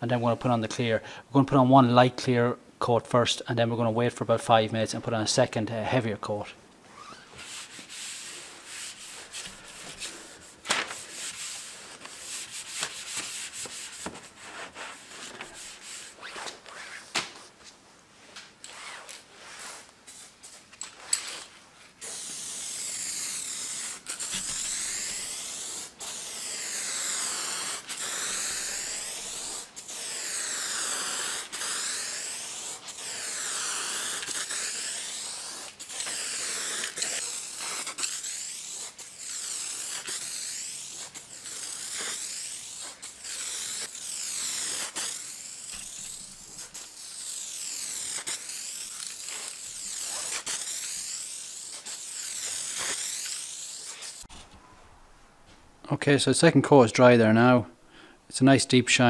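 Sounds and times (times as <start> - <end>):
aerosol spray can hissing: 22.0 - 54.3.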